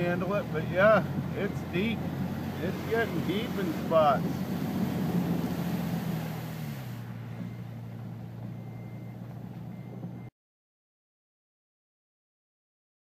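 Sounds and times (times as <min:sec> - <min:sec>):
car engine hum: 0:00.0 - 0:10.3
water hissing: 0:02.2 - 0:07.1.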